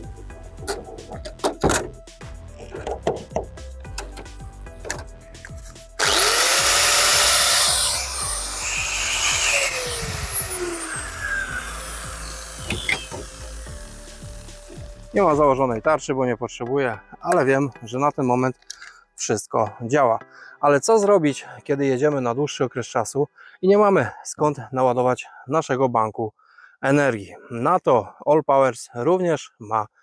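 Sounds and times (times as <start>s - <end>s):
angle grinder whine: 6.0s - 15.2s.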